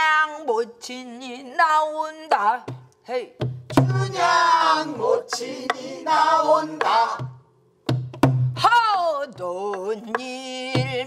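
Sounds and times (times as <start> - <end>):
woman singing with wide vibrato: 0.0 - 5.4, 8.6 - 11.0
barrel drum strike: 3.4 - 4.3, 6.8 - 8.6.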